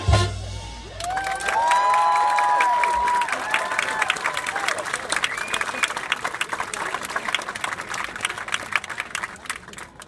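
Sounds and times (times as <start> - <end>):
crowd cheering and applauding: 0.8 - 10.0.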